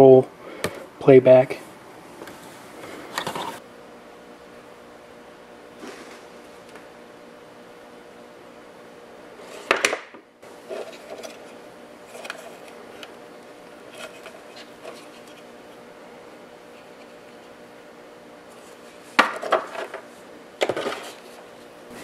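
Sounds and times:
faint steady hum: 0:00.0 - 0:22.0
clicks and rustles of handled parts: 0:13.9 - 0:15.4.

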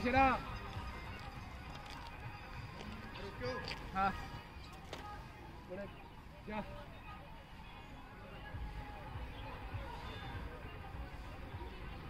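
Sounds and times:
faint voices talking: 0:00.0 - 0:12.0
outdoor background noise: 0:00.0 - 0:12.0.

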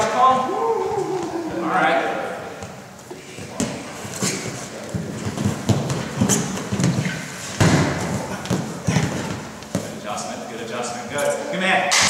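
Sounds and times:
feet shuffling on mat: 0:02.6 - 0:10.0
bodies thudding onto mat: 0:05.0 - 0:10.0.

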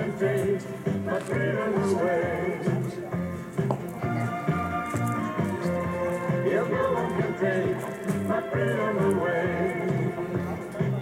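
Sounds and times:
music with steady bass beat: 0:00.0 - 0:11.0.

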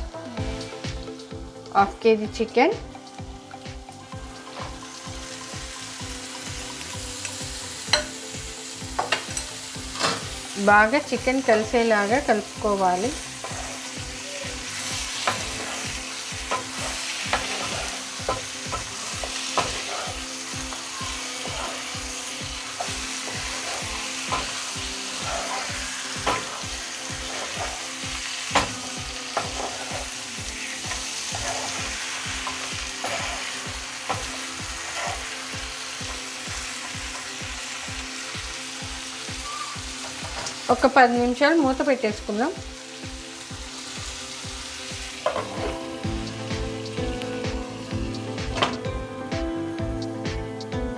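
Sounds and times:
chicken sizzling in pan: 0:00.2 - 0:48.9.

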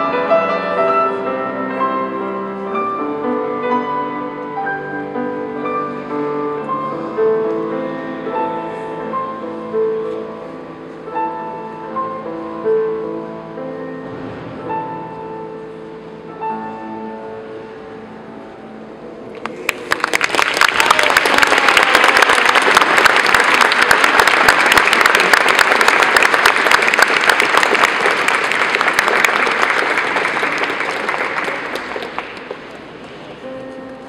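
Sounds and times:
piano notes: 0:00.0 - 0:19.7, 0:22.4 - 0:34.0
audience applauding: 0:19.4 - 0:32.9.

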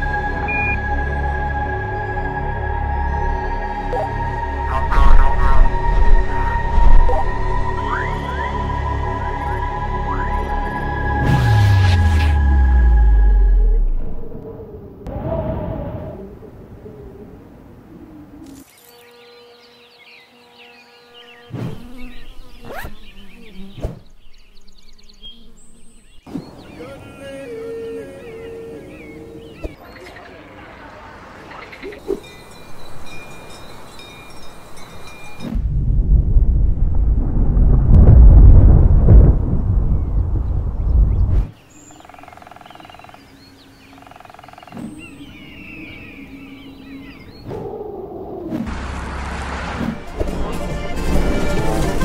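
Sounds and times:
birds chirping: 0:00.0 - 0:11.9, 0:16.6 - 0:35.6, 0:39.9 - 0:49.9
rising pitch sweep: 0:00.0 - 0:15.8
low rumble: 0:00.0 - 0:16.8, 0:35.6 - 0:41.5
thunder rumbling: 0:04.7 - 0:08.0, 0:35.6 - 0:41.5
flying insect buzzing: 0:18.4 - 0:26.2
cowbells ringing: 0:32.2 - 0:35.4.

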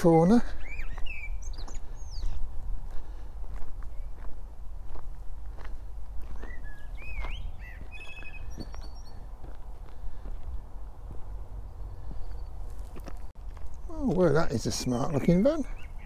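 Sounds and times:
birds chirping and whistling: 0:00.4 - 0:02.5, 0:06.2 - 0:09.4, 0:11.3 - 0:12.8, 0:13.8 - 0:16.0
footsteps on gravel: 0:00.8 - 0:15.6.

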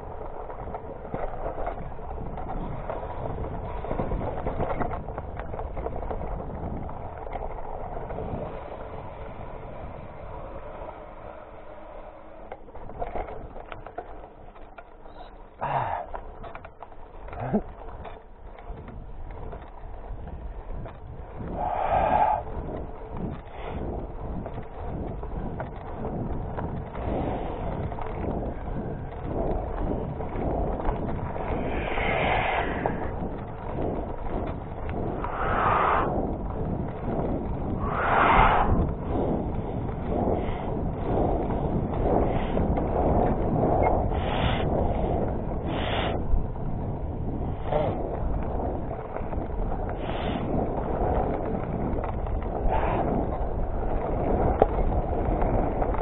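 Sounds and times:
bike rattling over bumps: 0:00.0 - 0:56.0
bike tyre rumble on gravel: 0:00.0 - 0:56.0
wind on microphone: 0:00.0 - 0:56.0
short rushes of noise: 0:31.4 - 0:33.2, 0:35.2 - 0:36.3, 0:37.8 - 0:39.0.

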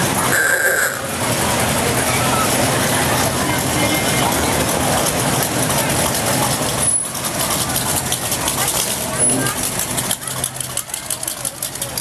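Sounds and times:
car engines running at low speed: 0:00.0 - 0:12.0
crowd voices: 0:00.0 - 0:12.0.

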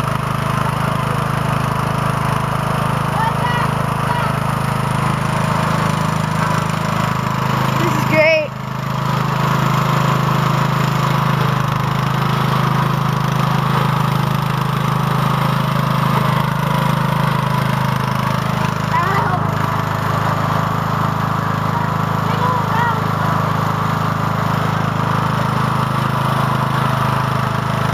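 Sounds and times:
lawn tractor engine running: 0:00.0 - 0:27.9.

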